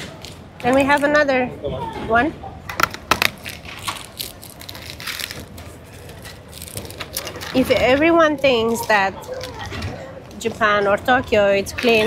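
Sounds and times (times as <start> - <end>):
plastic packets crinkling: 3.0 - 9.8.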